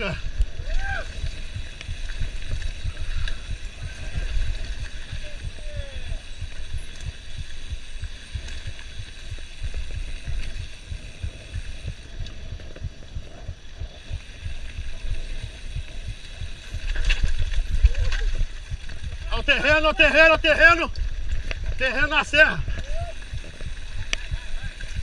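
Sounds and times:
bike rumbling on rough trail: 0.0 - 25.0
wind noise: 0.0 - 25.0.

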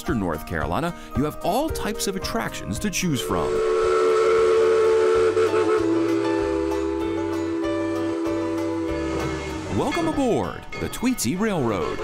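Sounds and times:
steam locomotive whistle blowing: 3.2 - 10.2.

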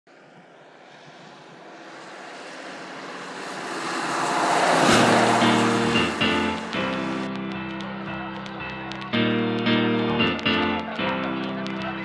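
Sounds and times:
news theme music: 5.0 - 12.0.

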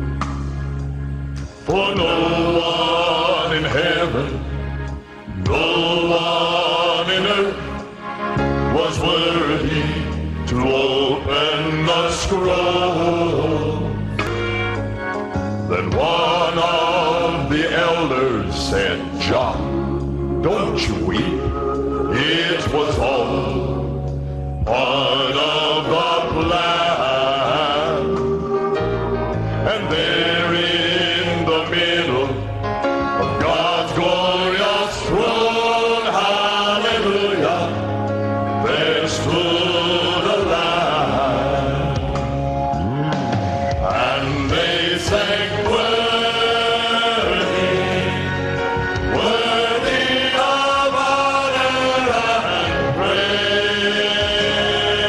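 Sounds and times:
instrumental accompaniment with bass: 0.0 - 55.0
man singing gospel with vibrato: 1.6 - 14.1, 15.6 - 24.0, 24.6 - 37.9, 38.5 - 55.0.

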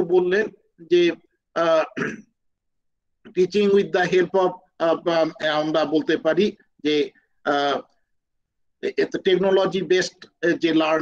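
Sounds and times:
man speaking: 0.0 - 2.0, 3.3 - 8.0, 8.8 - 11.0
man clearing his throat: 1.6 - 2.4.

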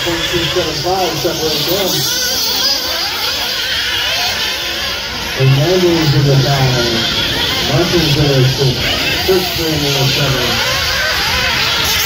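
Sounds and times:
toy car motors whining: 0.0 - 12.0.

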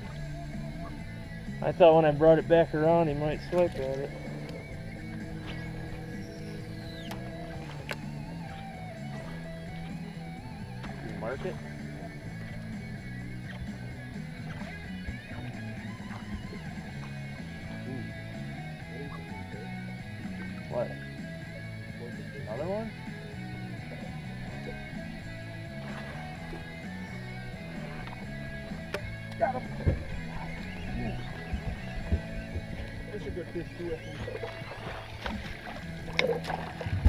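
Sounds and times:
men's voices: 1.6 - 7.4, 29.0 - 34.9.

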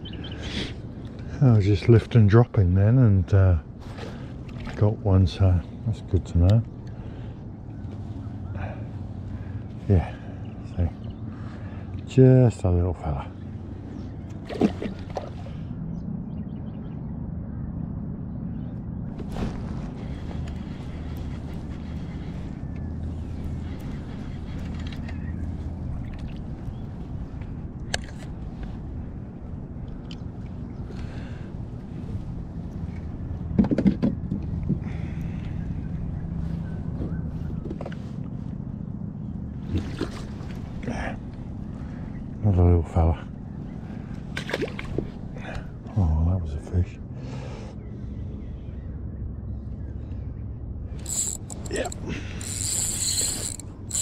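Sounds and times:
water around a kayak: 0.0 - 17.1, 18.4 - 54.0
wind: 0.0 - 54.0.

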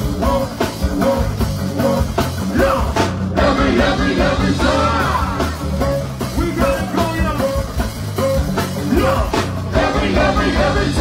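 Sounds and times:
bass: 0.0 - 11.0
drum and percussion groove: 0.0 - 11.0.

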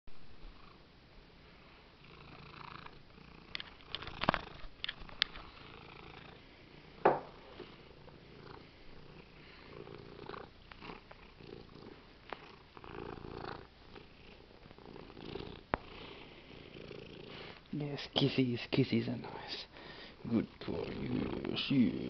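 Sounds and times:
cat purring: 0.4 - 0.8, 1.4 - 18.3, 19.1 - 22.0.

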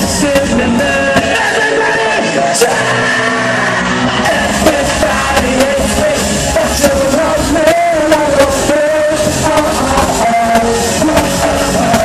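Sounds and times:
deep bass: 0.0 - 12.0
hip-hop instrumental music: 0.0 - 12.0.

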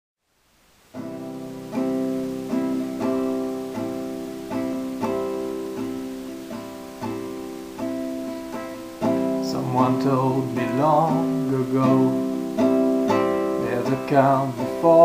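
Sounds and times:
acoustic guitar strumming chords: 0.9 - 15.0.

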